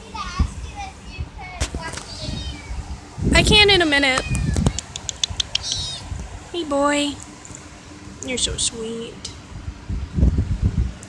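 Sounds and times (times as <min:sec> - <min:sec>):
cat meowing: 0:02.1 - 0:02.8, 0:04.0 - 0:04.9, 0:05.5 - 0:06.1.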